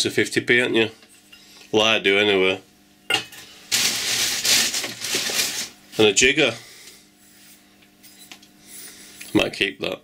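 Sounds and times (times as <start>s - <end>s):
plastic bag rustling: 3.6s - 6.1s.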